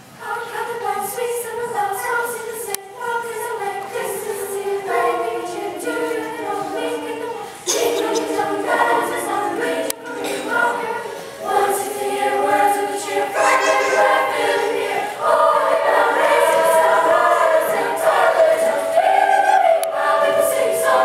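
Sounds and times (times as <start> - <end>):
girls' choir singing: 0.0 - 21.0
singers breathing: 11.0 - 11.5.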